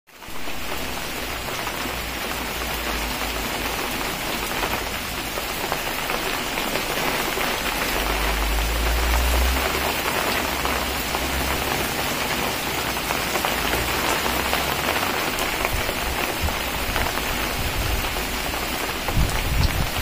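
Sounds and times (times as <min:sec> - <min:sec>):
heavy rain pouring: 0:00.1 - 0:20.0.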